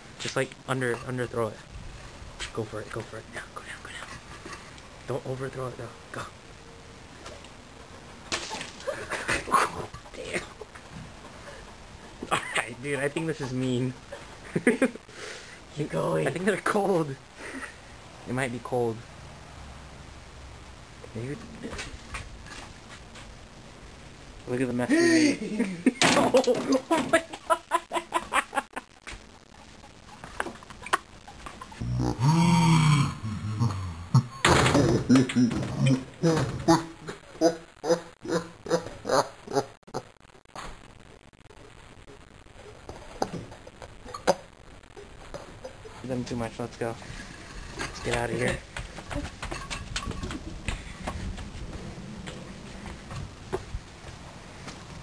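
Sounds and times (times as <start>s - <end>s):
faint rustles and clicks: 21.0s - 23.6s.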